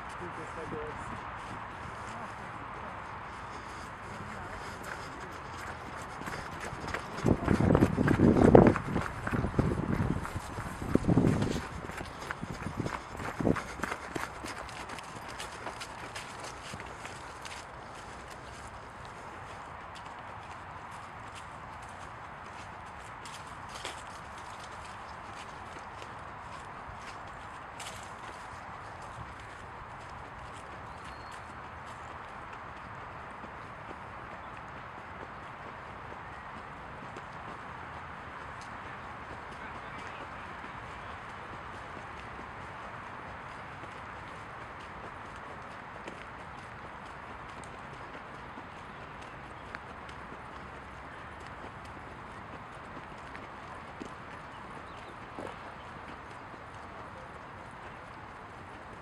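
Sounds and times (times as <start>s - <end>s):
wind rumbling on microphone: 0.0s - 34.7s
footsteps walking and running: 0.0s - 59.0s.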